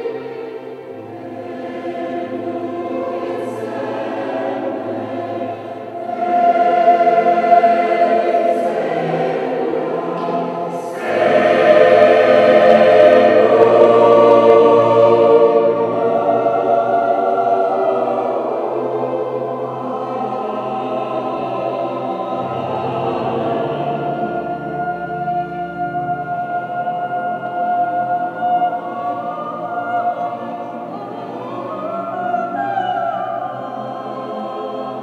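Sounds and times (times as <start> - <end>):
mixed choir singing: 0.0 - 35.0
string orchestra: 0.0 - 35.0.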